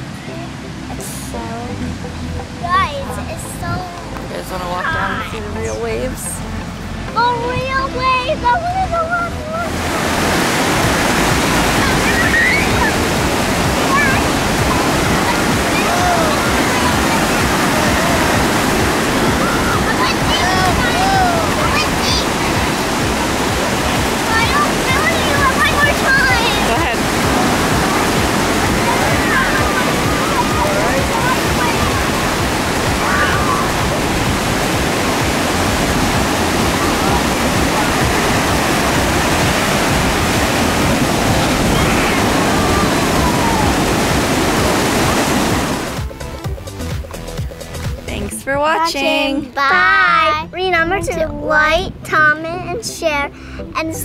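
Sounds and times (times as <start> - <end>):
surf waves breaking: 0.0 - 48.2
children shouting and squealing: 10.8 - 45.2, 49.5 - 51.6.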